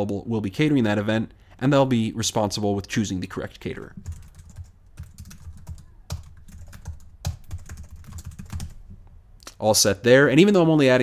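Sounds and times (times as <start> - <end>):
keyboard typing clicks: 4.0 - 8.8.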